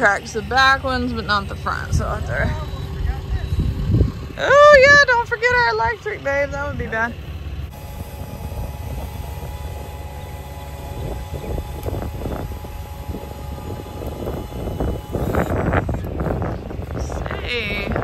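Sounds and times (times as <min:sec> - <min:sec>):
leveling jack motor drone: 0:00.0 - 0:18.0.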